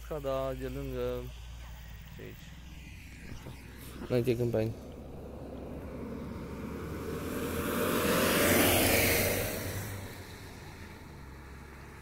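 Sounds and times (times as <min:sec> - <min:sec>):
car driving past: 0:01.6 - 0:12.0.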